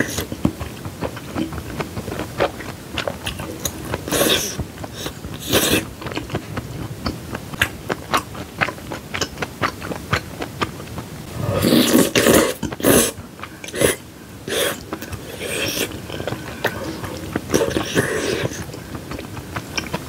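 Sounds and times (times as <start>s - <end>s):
wet chewing: 0.0s - 20.0s
noodle slurp: 1.2s - 6.4s, 11.3s - 20.0s.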